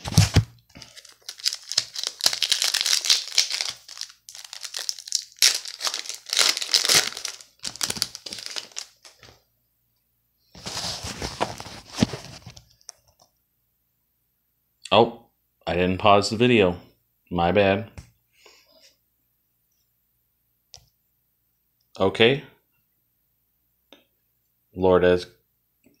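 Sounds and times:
foil wrapper tearing and crinkling: 0.0s - 9.3s.

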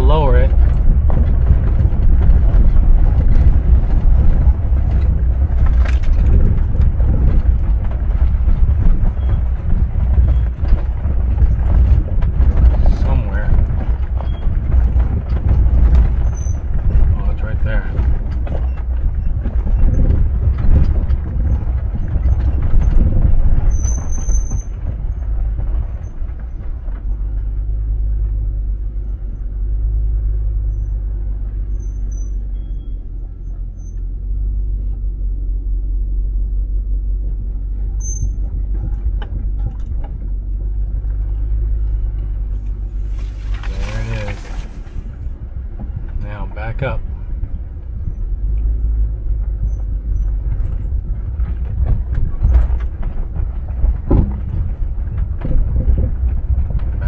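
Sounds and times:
knocks from ruts: 0.0s - 34.9s, 37.1s - 57.0s
car engine and tyres rumbling: 0.0s - 57.0s.

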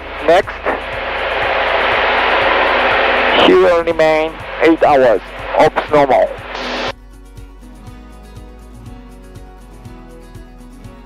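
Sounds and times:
plane engine drone: 0.0s - 6.9s
radio static hiss: 0.0s - 6.9s.

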